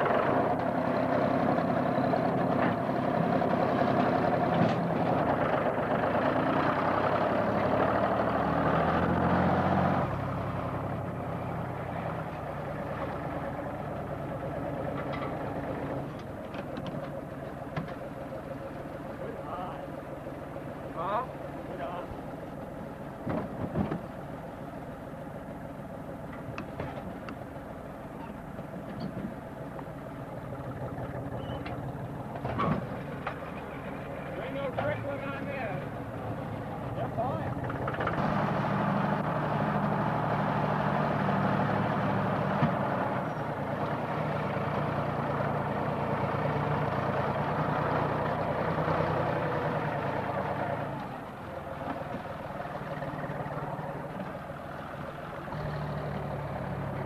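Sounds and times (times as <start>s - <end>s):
tractor engine running: 0.0s - 57.0s.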